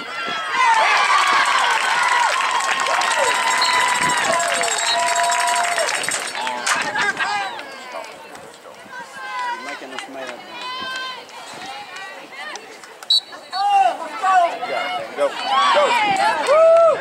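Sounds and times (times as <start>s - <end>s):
spectators calling and talking: 0.0s - 17.0s
referee's whistle blast: 13.1s - 13.7s
people shouting: 13.4s - 17.0s.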